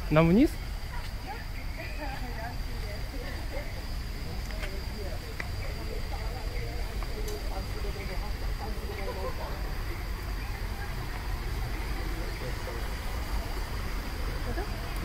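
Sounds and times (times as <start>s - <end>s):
faint distant voices talking: 0.0s - 15.0s
low rumble and hiss: 0.0s - 15.0s.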